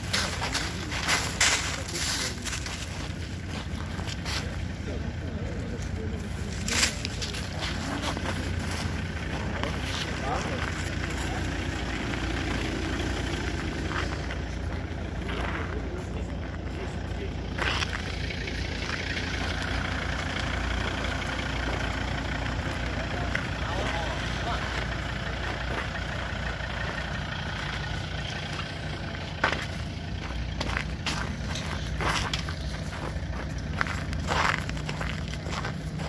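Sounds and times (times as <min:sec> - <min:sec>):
car engine idling: 0:00.0 - 0:36.0.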